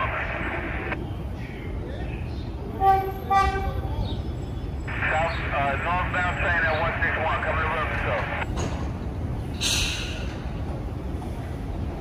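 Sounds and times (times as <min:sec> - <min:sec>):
public-address announcement: 0:00.0 - 0:01.0, 0:01.7 - 0:08.6
train rumbling on track: 0:00.0 - 0:12.0
train horn blasts: 0:02.8 - 0:03.8.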